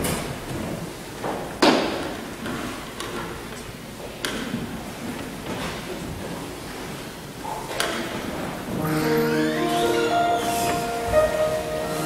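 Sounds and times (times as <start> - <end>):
hall room noise hiss: 0.0 - 12.0.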